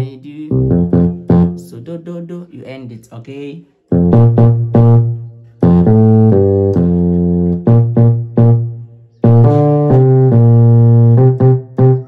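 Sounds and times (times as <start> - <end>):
electric piano bass line: 0.0 - 2.1, 3.9 - 12.0.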